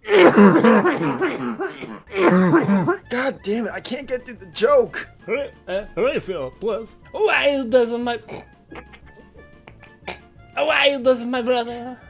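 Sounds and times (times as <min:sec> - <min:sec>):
stifled laughter: 0:00.1 - 0:03.1, 0:08.7 - 0:10.2.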